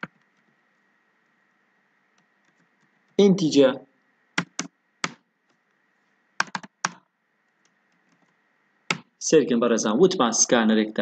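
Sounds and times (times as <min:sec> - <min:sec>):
keyboard keystroke clicks: 0:06.4 - 0:07.0.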